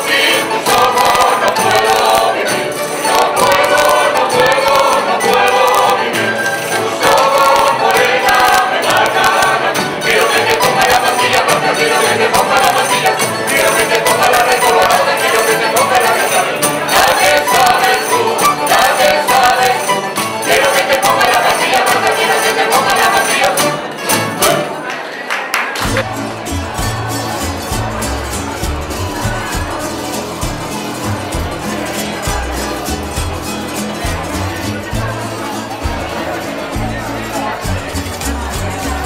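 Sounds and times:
double bass: 0:00.0 - 0:24.7, 0:25.8 - 0:39.0
plucked lute: 0:00.0 - 0:24.9, 0:25.8 - 0:39.0
strummed guitars: 0:00.0 - 0:25.1, 0:25.8 - 0:39.0
group singing in chorus: 0:00.0 - 0:25.2, 0:25.8 - 0:39.0.

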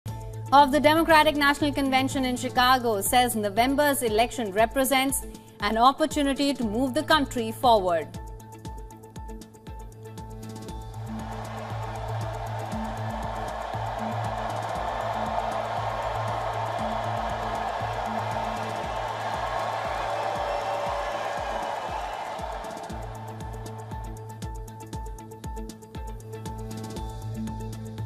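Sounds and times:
music with steady beat: 0:08.1 - 0:28.0
crowd cheering and applauding: 0:10.8 - 0:24.7.

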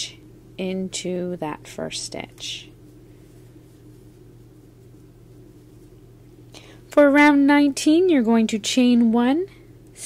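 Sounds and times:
woman speaking: 0:00.0 - 0:02.8, 0:06.9 - 0:10.0
faint background hum: 0:00.0 - 0:10.0.

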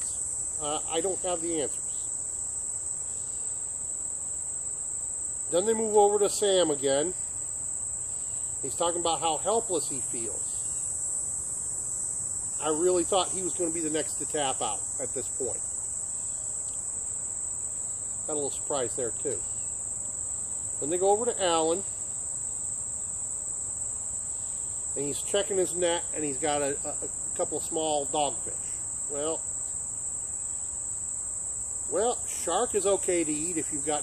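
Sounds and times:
insects trilling: 0:00.0 - 0:34.0.

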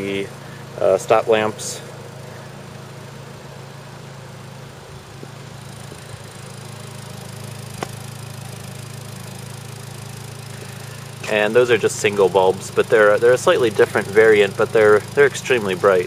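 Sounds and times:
car engine idling: 0:00.0 - 0:16.0
sharp click: 0:07.8 - 0:08.0.

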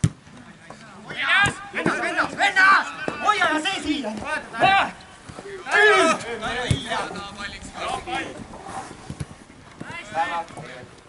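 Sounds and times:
players shouting: 0:01.0 - 0:09.0, 0:09.8 - 0:10.9.

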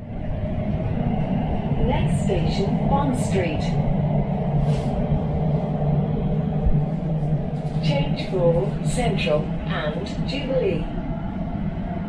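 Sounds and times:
train low rumble in tunnel: 0:00.0 - 0:12.0.

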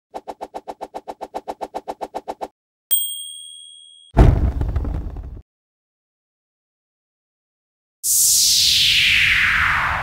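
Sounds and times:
high bell ding: 0:02.9 - 0:04.2.

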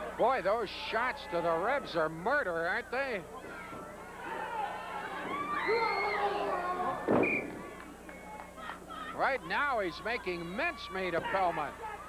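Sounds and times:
crowd yelling: 0:00.0 - 0:02.5, 0:03.2 - 0:12.0.

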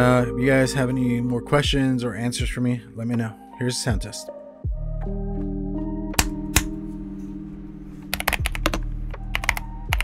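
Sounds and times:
background music: 0:00.0 - 0:10.0
mechanical keyboard typing: 0:08.1 - 0:10.0.

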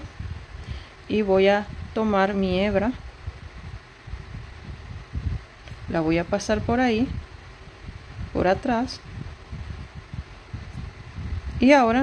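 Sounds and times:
faint handling bumps and rumble: 0:01.1 - 0:12.0.

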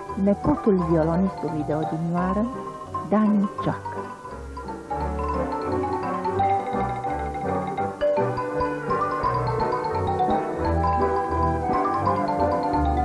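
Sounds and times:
folk band: 0:00.0 - 0:13.0
xylophone playing folk tune: 0:00.0 - 0:13.0.

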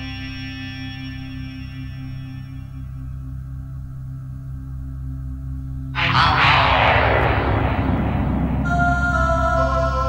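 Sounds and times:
sustained synthesizer chords: 0:03.0 - 0:10.0
whoosh falling in pitch: 0:06.0 - 0:10.0.

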